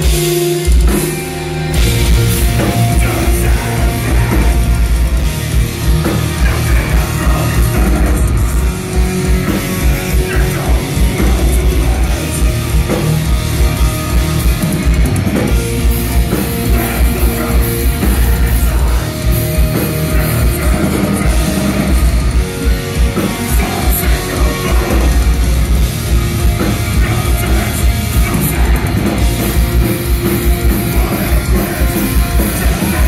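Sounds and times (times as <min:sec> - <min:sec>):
distorted guitars: 0:00.0 - 0:33.0.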